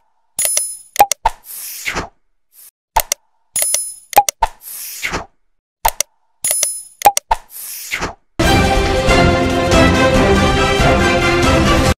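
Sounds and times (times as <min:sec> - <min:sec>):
click and pop sound effects: 0:00.4 - 0:02.1, 0:03.0 - 0:08.2
theme music: 0:08.4 - 0:11.9.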